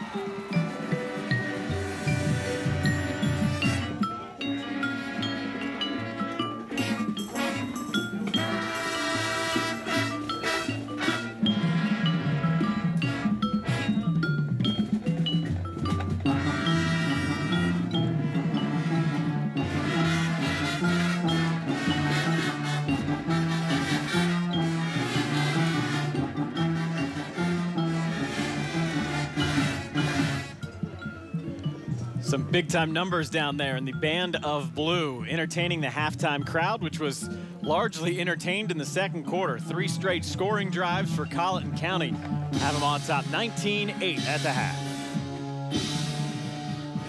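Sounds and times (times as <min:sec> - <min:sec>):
brass chords: 0:00.0 - 0:31.0, 0:32.2 - 0:47.0
percussion hits: 0:00.0 - 0:34.9, 0:39.5 - 0:47.0.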